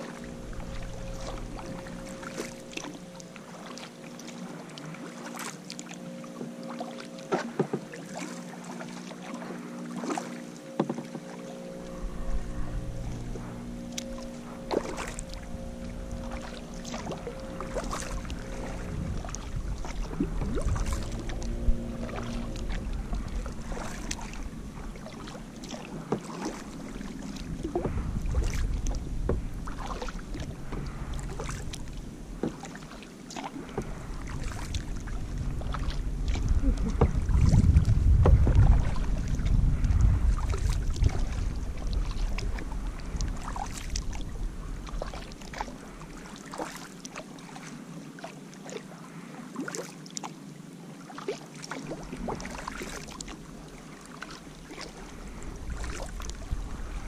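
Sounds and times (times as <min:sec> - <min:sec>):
wind rumbling on microphone: 0:00.0 - 0:03.6, 0:10.8 - 0:46.4, 0:51.8 - 0:57.0
paddle splashing water: 0:00.0 - 0:57.0.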